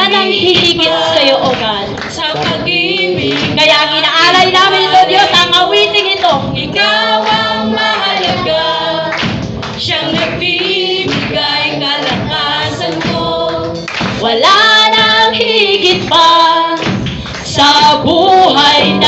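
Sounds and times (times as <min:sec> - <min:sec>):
woman singing into a microphone: 0:00.0 - 0:09.1, 0:09.8 - 0:19.0
drums: 0:00.0 - 0:19.0.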